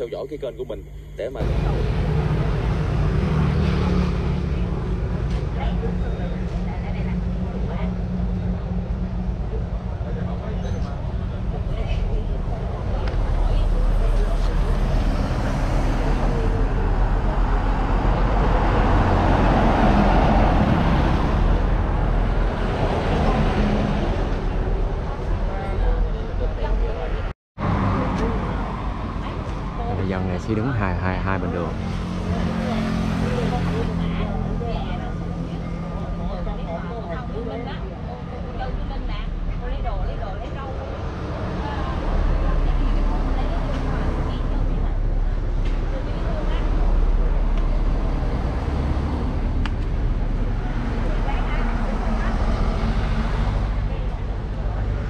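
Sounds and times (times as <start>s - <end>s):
bus engine rumble: 0.0s - 55.0s
faint voices talking: 0.0s - 55.0s
roadside traffic noise: 0.0s - 55.0s
car driving past: 1.4s - 26.0s, 26.9s - 39.5s.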